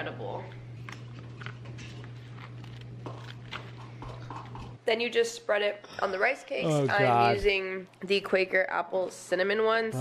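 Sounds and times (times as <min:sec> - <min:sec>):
steady low hum: 0:00.0 - 0:04.8.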